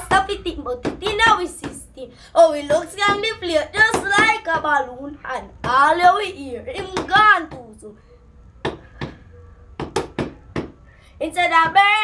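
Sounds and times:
sharp knocks: 9.8s - 10.8s.

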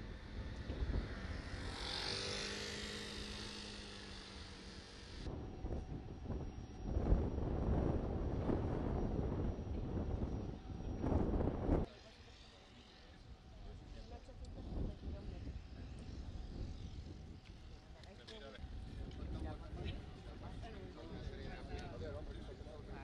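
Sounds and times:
engine drone: 0.0s - 13.2s
wind buffeting microphone: 5.3s - 11.9s, 14.4s - 18.0s, 18.6s - 23.0s.

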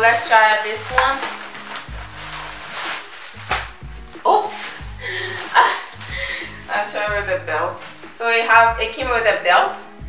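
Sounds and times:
plastic packaging crinkling: 0.0s - 7.2s
background music with low beat: 0.0s - 10.0s.

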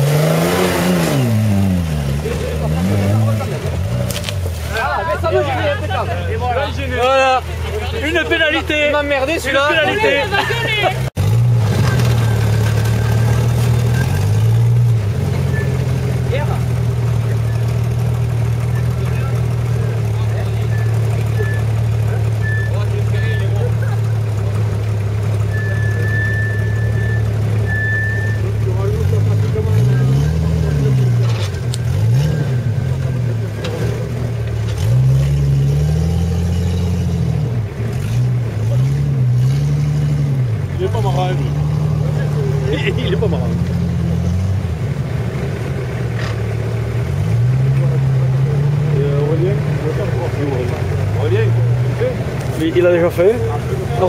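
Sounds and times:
off-road engine idling and revving: 0.0s - 54.0s.

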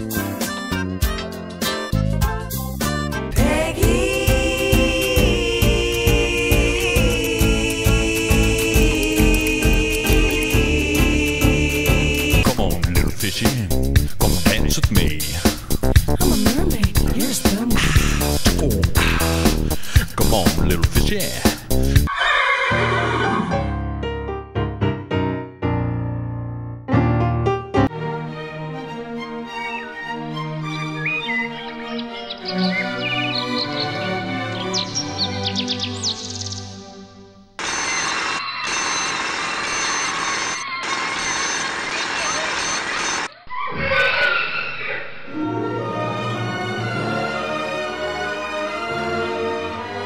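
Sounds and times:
music: 0.0s - 22.1s, 22.7s - 37.6s, 45.3s - 50.0s
horse whinny: 22.1s - 23.7s
alarm clock ringing: 37.6s - 43.3s.

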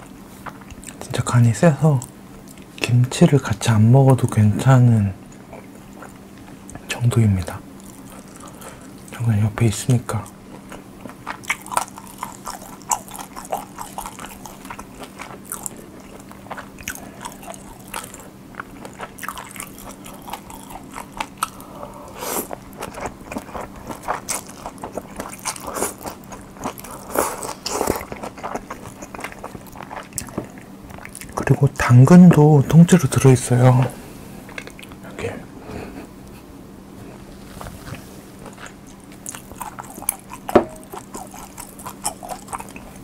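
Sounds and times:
close-miked chewing noodles: 0.0s - 2.9s, 5.2s - 33.4s, 34.4s - 35.1s, 37.4s - 43.0s.

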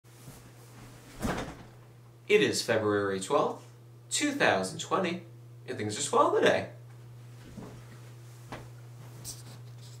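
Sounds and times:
clothing and chair rustling: 0.1s - 1.7s, 7.0s - 10.0s
steady low hum: 0.1s - 10.0s.

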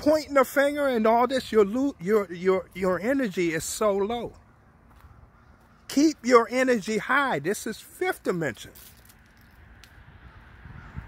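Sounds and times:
low steady roadside rumble: 0.0s - 11.0s.

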